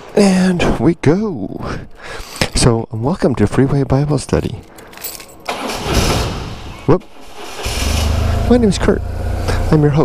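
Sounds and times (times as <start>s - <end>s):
motorcycle engine rumbling: 7.1s - 10.0s.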